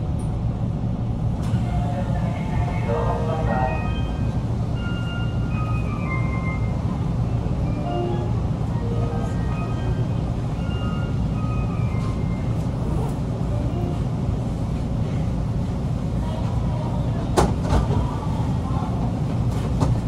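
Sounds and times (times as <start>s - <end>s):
train running rumble: 0.0s - 20.0s.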